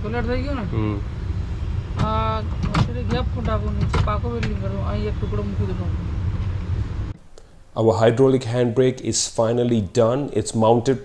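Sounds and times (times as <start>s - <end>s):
low rumble: 0.0s - 7.2s
men talking: 0.7s - 1.0s, 7.8s - 11.0s.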